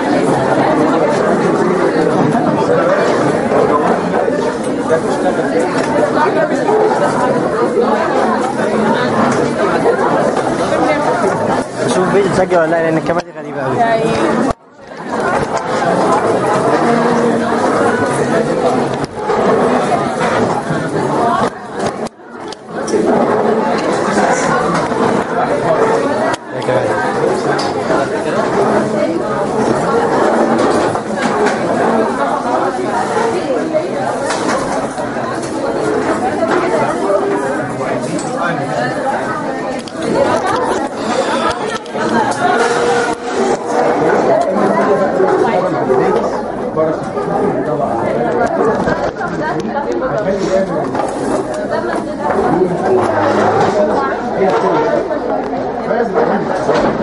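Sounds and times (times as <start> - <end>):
students chattering: 0.0 - 57.0.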